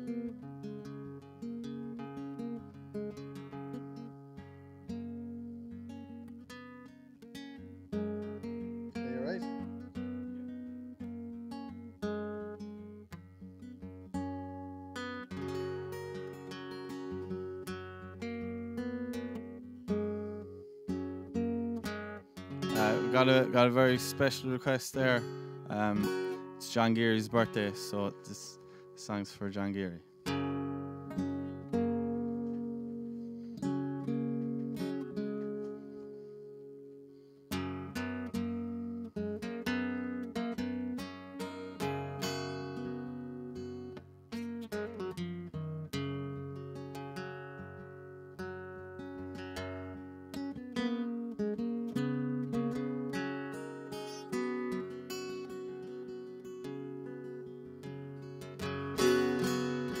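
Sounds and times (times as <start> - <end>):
acoustic guitar playing: 0.0 - 60.0.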